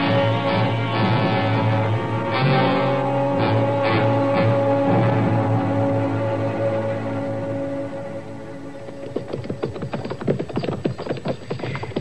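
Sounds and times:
dramatic music chords: 0:00.0 - 0:08.9
horse hoofbeats: 0:08.0 - 0:12.0.

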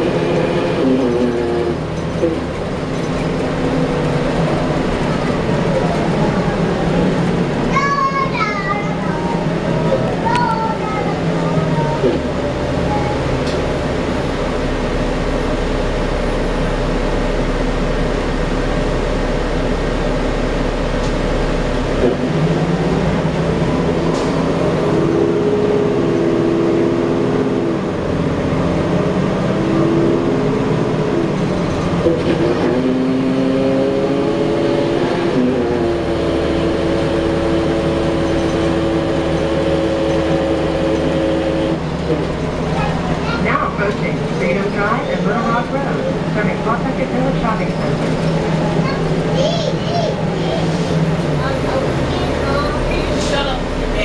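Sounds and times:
bus diesel engine: 0:00.0 - 0:54.0.

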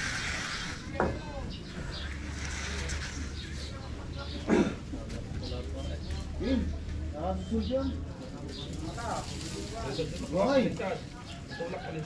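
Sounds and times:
indistinct voices of people working: 0:00.0 - 0:12.0.

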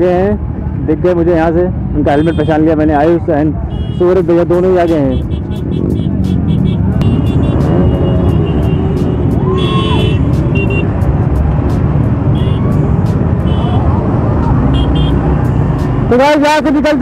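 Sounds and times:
high-pitched horn toots: 0:04.9 - 0:10.9.

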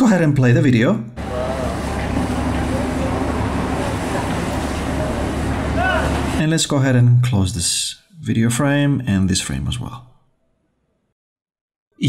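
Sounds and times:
faint distant voices: 0:01.2 - 0:06.4
low motor rumble: 0:01.2 - 0:06.4
traffic-like noise: 0:01.2 - 0:06.4.

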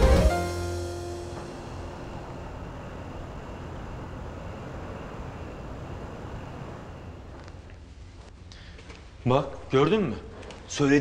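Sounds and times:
distant traffic: 0:00.5 - 0:07.9.

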